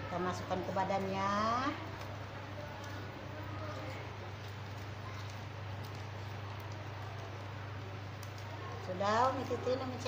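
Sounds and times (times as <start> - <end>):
small paper clicks: 1.8 - 10.0.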